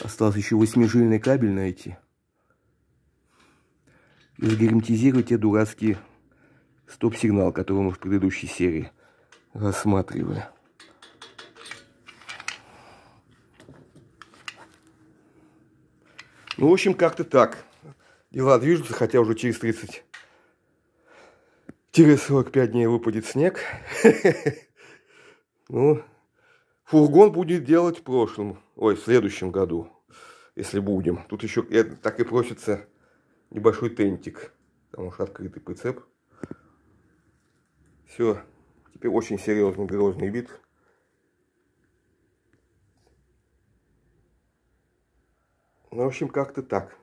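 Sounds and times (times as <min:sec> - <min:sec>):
small parts clicking on metal frame: 0:10.3 - 0:12.7.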